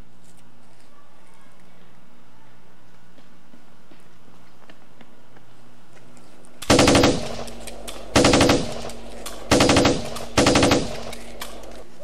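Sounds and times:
machine-gun fire bursts: 0:06.6 - 0:11.8.

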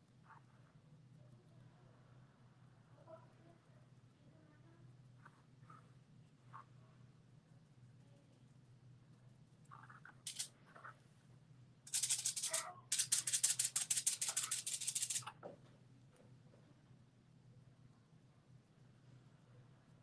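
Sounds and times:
sponge crinkling aluminium foil: 0:11.9 - 0:15.3.

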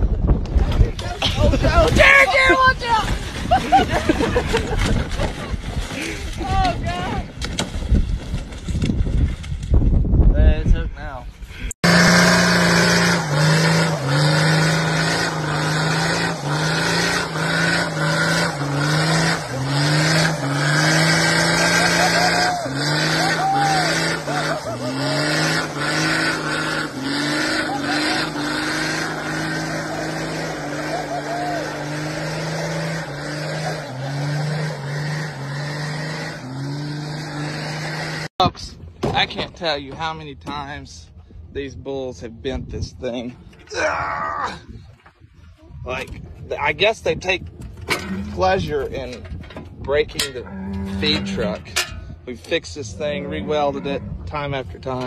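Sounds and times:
loud rough rumble: 0:11.5 - 0:40.1, 0:44.6 - 0:55.0
engine revving high: 0:11.8 - 0:38.3, 0:50.3 - 0:51.7.

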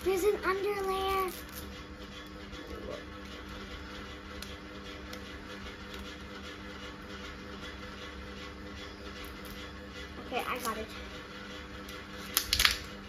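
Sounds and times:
steady low hum: 0:00.0 - 0:13.0
plastic ball clicks and rustles: 0:12.3 - 0:12.9.

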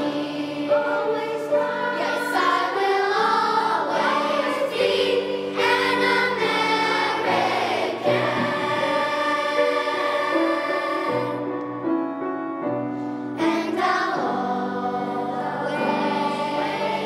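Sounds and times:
children's choir singing: 0:00.0 - 0:12.0, 0:13.4 - 0:17.0.

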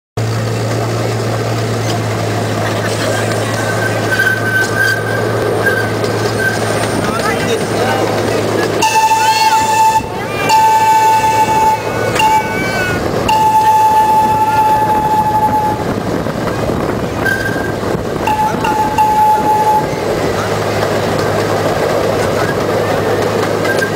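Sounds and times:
miniature train humming on track: 0:00.2 - 0:23.9
train whistle blasts: 0:08.8 - 0:16.0, 0:17.2 - 0:19.9.

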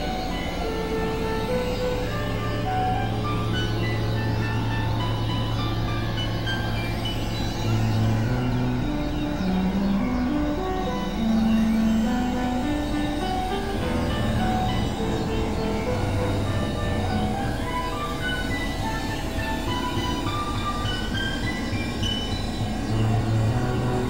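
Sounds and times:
experimental synthesizer music: 0:00.0 - 0:24.0.

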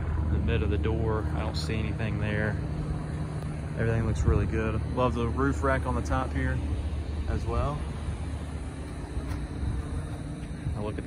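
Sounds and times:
faint hum: 0:00.0 - 0:11.0
low outdoor rumble: 0:00.0 - 0:11.0.

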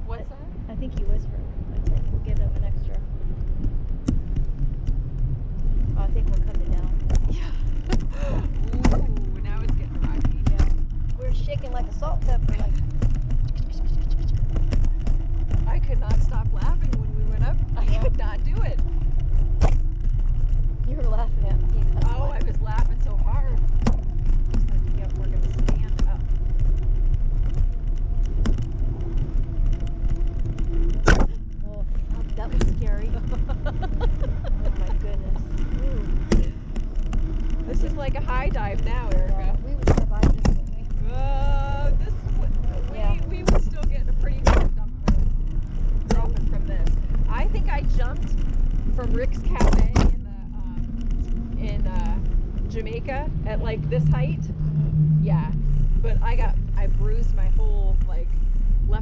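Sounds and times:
wind buffeting microphone: 0:00.0 - 0:59.0
faint voices: 0:05.9 - 0:14.8, 0:30.9 - 0:45.4.

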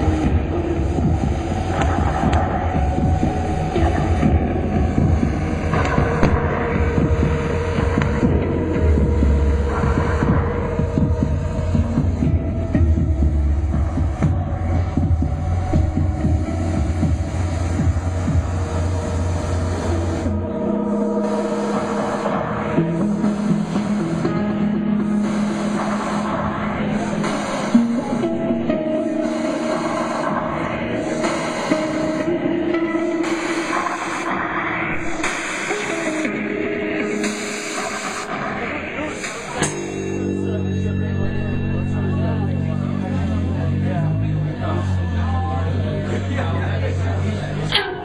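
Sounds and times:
higher steady tone: 0:00.0 - 0:33.8, 0:36.1 - 0:48.0
deep electronic drone: 0:00.0 - 0:48.0.

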